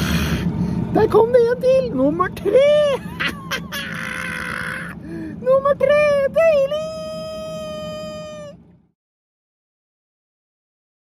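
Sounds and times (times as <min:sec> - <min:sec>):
man's high-pitched cry: 0:03.0 - 0:05.0, 0:06.7 - 0:08.6.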